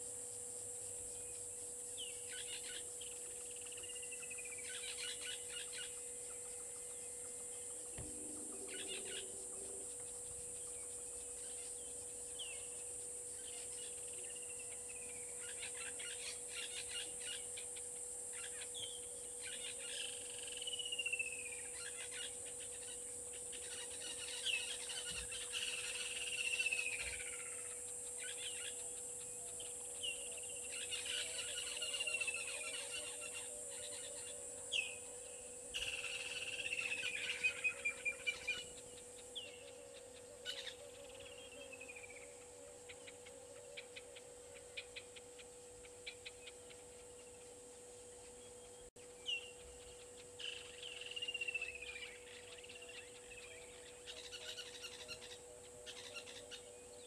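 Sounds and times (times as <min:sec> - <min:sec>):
low steady hum: 0:00.0 - 0:57.0
high-pitched drone: 0:07.9 - 0:11.5
bird whistling call: 0:08.0 - 0:10.2.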